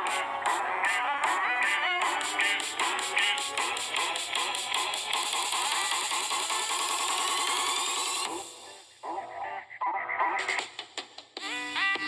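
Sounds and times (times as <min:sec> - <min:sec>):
electronic beatboxing vocals: 0:00.0 - 0:12.0.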